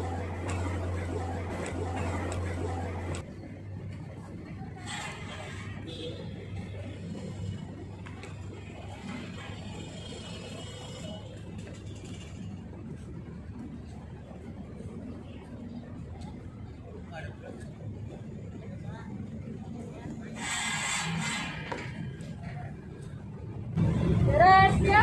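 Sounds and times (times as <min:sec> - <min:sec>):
low hum: 0:00.0 - 0:05.8.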